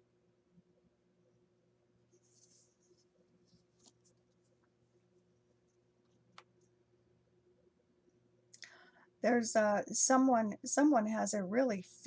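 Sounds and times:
low steady hum: 0.0s - 12.0s
faint rustling: 2.1s - 6.7s.

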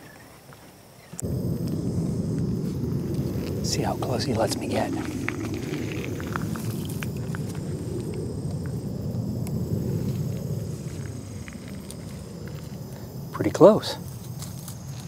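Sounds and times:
crackling reed stalks: 1.1s - 15.0s
low steady rumble: 1.2s - 15.0s.

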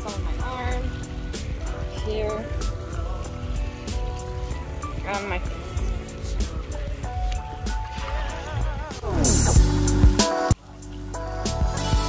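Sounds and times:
background music with steady beat: 0.0s - 12.0s
heavy bass: 0.0s - 12.0s.

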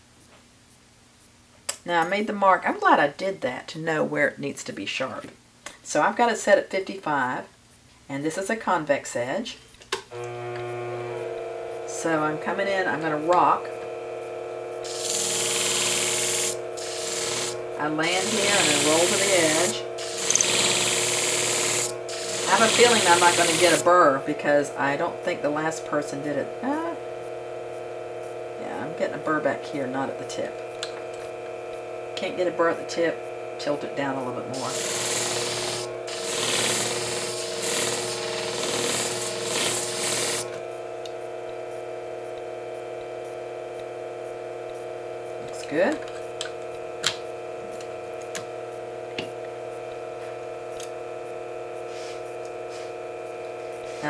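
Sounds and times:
machine motor humming: 10.1s - 54.0s
blade grinding hiss: 14.8s - 23.8s, 34.6s - 40.6s.

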